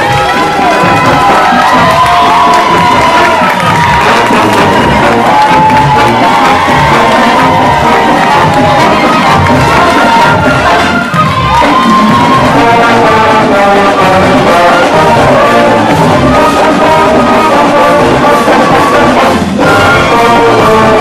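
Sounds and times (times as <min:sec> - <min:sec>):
crowd cheering and shouting: 0:00.0 - 0:21.0
music playing: 0:00.0 - 0:21.0.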